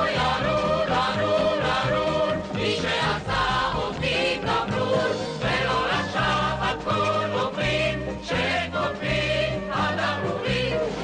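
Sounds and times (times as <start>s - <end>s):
group of voices singing: 0.0s - 11.0s.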